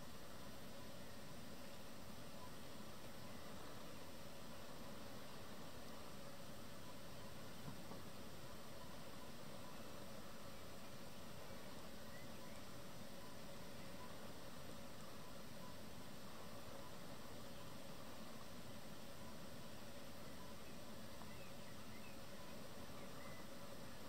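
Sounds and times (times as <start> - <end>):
faint hum: 0.0 - 24.0
faint steady hiss: 0.0 - 24.0.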